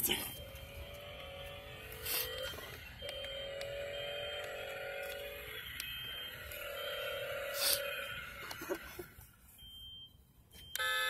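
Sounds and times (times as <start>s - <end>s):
toy car motor whining: 0.2s - 9.2s.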